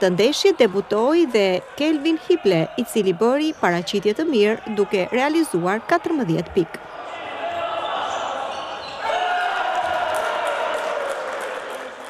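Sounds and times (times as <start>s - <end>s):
players calling out: 0.0s - 10.6s
echoing hall murmur: 0.0s - 12.0s.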